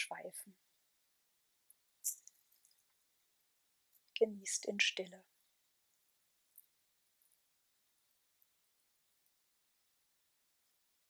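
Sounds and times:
soft breath hiss: 0.0s - 11.0s.

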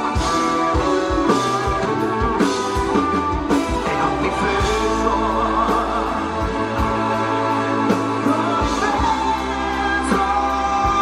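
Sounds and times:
bass guitar: 0.0s - 11.0s
electric guitars: 0.0s - 11.0s.

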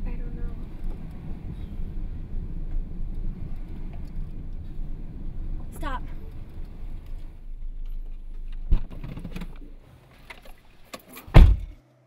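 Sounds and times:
car engine running: 0.0s - 9.8s
car door shutting: 10.4s - 11.8s.

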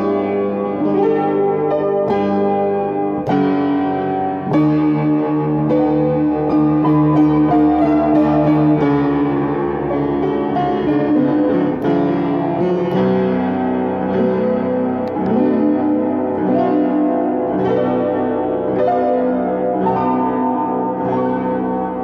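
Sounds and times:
upright piano chords: 0.0s - 22.0s.

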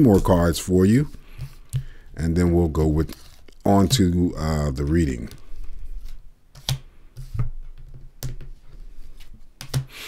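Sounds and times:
cards rustling: 3.0s - 4.1s.

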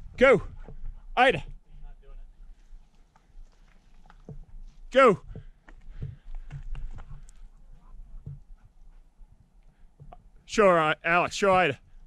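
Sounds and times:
footsteps on loose rock: 2.5s - 8.6s.

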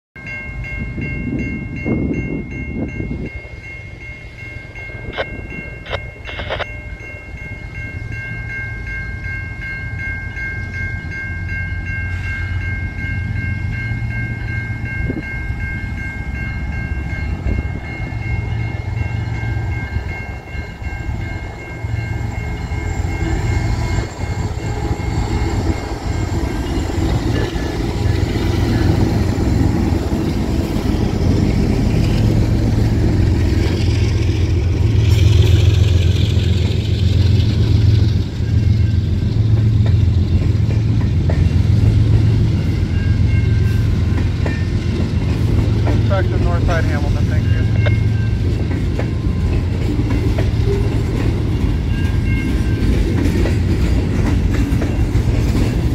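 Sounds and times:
diesel locomotive engine rumble: 0.2s - 55.9s
freight cars rumbling and clattering: 11.8s - 55.9s.

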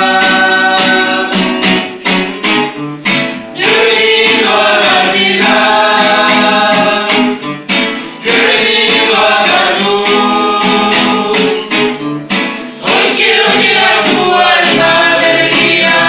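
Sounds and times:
group singing worship song: 0.0s - 2.0s, 3.4s - 11.9s, 12.7s - 16.0s
strummed acoustic guitars: 0.0s - 16.0s.

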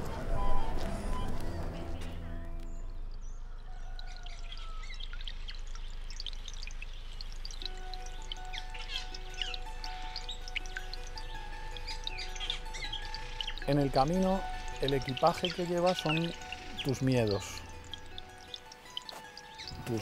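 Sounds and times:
small birds chirping and singing: 0.0s - 20.0s
soft music with long held notes: 7.6s - 20.0s.

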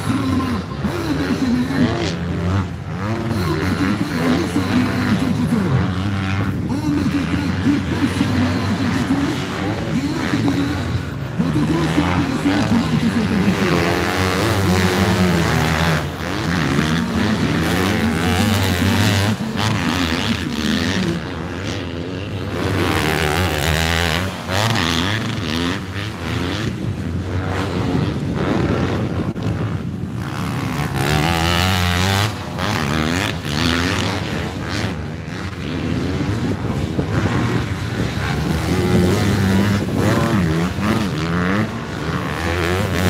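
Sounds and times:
motorbike engines revving: 0.0s - 43.0s.

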